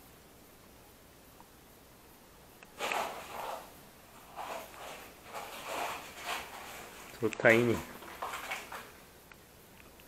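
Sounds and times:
matchbox rustling and scraping: 0:02.8 - 0:08.7.

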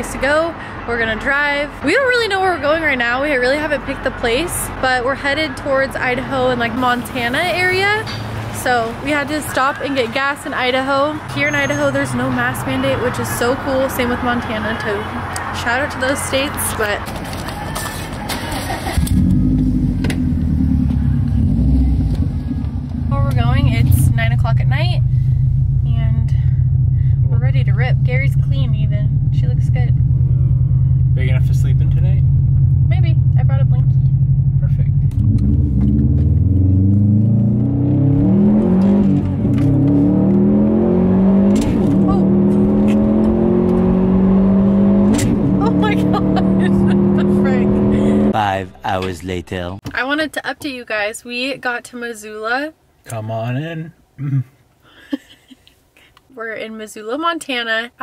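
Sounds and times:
car engine starting and running: 0:18.2 - 0:50.1.

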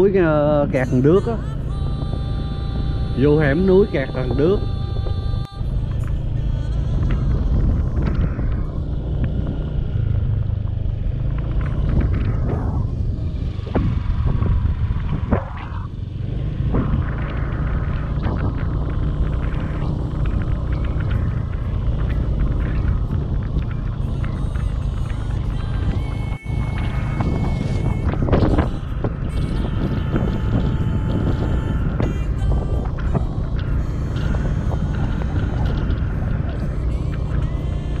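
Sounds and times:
motorbike running: 0:00.0 - 0:38.0
wind buffeting microphone: 0:00.0 - 0:38.0.

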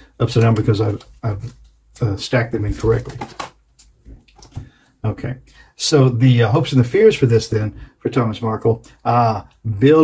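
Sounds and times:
cards clicking and tapping: 0:02.7 - 0:04.6.

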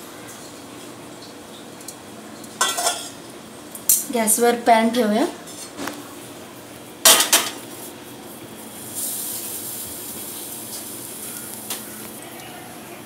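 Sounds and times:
metal cookware clanking on stove: 0:02.6 - 0:03.2
gas burner hiss: 0:07.0 - 0:12.6.

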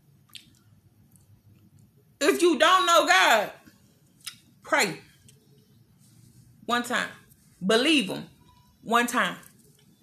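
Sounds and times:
wet mouth click: 0:00.3 - 0:01.3.

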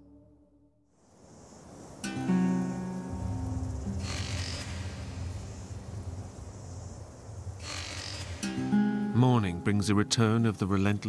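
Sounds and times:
low droning soundtrack: 0:02.0 - 0:11.0.

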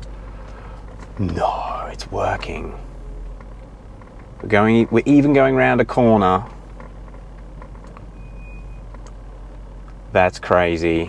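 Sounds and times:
car engine and road rumble: 0:00.0 - 0:11.0
electronic reversing beep: 0:08.1 - 0:08.9.

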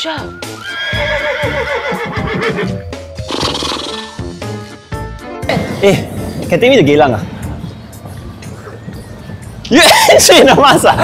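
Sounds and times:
background music: 0:00.0 - 0:11.0
horse-like whinny: 0:00.6 - 0:04.1.

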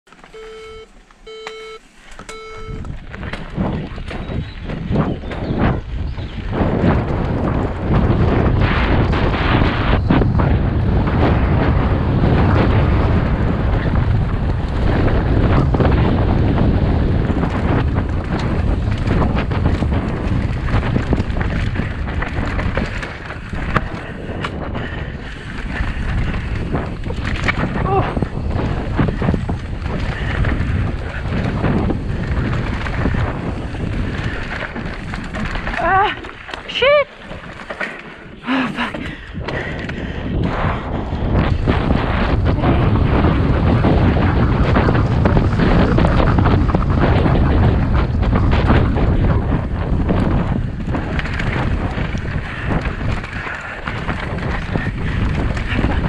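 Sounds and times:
bike tyres rumbling and rattling: 0:00.1 - 0:56.0
timing beeper beeps: 0:00.3 - 0:02.9
wind noise on microphone: 0:00.3 - 0:56.0.

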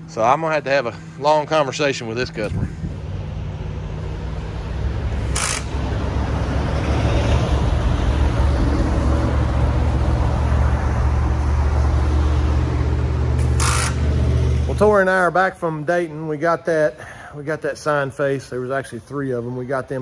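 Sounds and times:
highway traffic rumble: 0:00.0 - 0:20.0
short sharp noise: 0:13.4 - 0:14.1.

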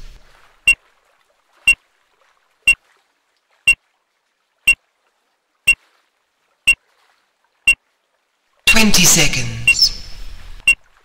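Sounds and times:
person speaking: 0:08.7 - 0:10.1.

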